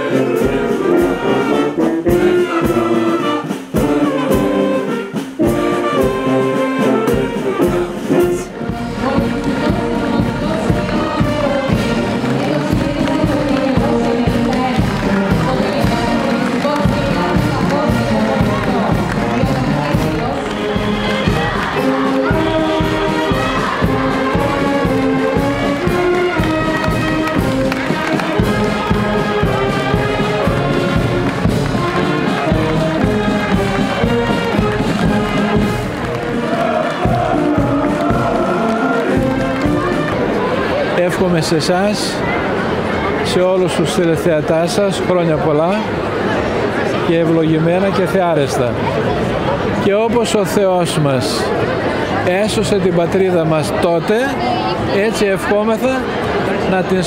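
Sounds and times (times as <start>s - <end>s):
steady drum beat: 0.0s - 40.3s
brass marching band playing: 0.0s - 57.0s
crowd voices: 0.0s - 57.0s.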